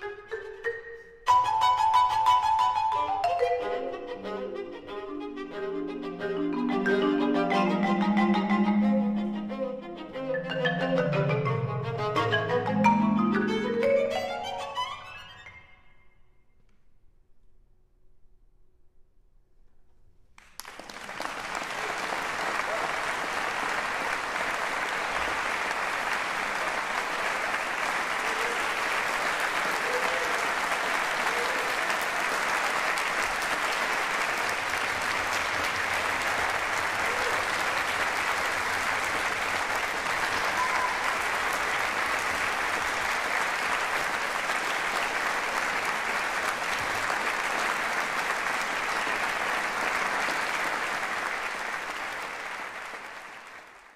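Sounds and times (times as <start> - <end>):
audience applauding: 20.4 - 53.9.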